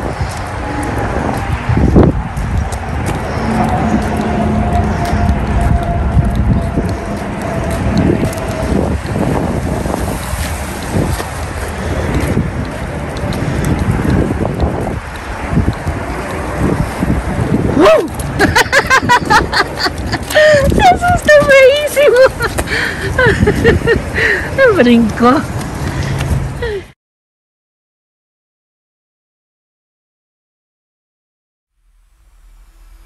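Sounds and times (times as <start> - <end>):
street traffic passing: 0.0 - 27.0
wind noise on microphone: 0.0 - 27.0.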